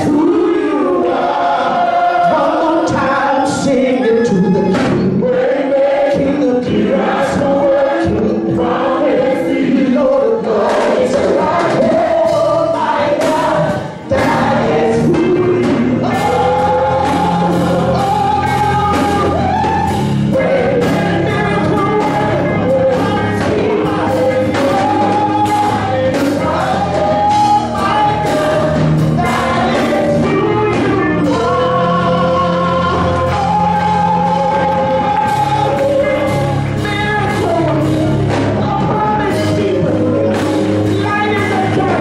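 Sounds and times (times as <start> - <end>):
band playing steady beat: 0.0 - 42.0
choir singing: 0.0 - 42.0
person singing into microphone: 0.0 - 42.0.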